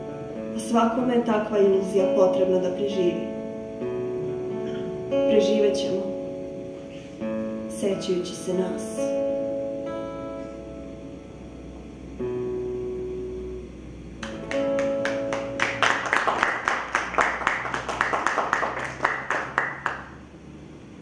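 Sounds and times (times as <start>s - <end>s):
acoustic guitar notes and strumming: 0.0s - 20.3s.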